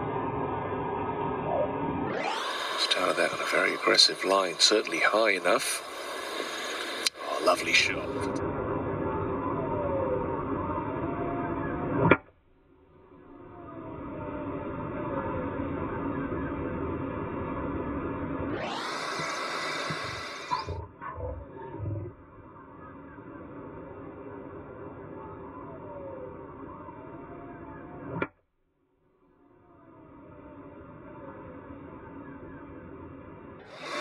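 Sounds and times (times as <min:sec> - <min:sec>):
broadcast background noise: 0:01.5 - 0:08.4
hiss: 0:02.3 - 0:08.3, 0:18.7 - 0:20.7, 0:33.7 - 0:34.0.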